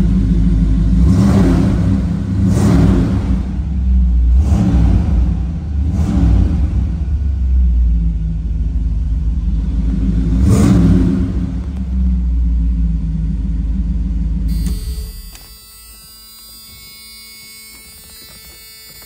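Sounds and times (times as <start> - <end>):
car engine idling and revving: 0.0 - 19.0.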